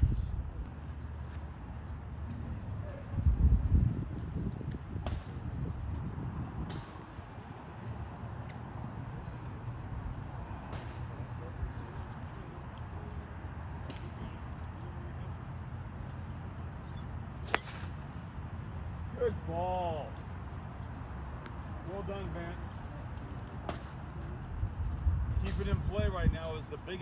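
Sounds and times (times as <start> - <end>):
golf club striking ball: 17.4 - 18.1.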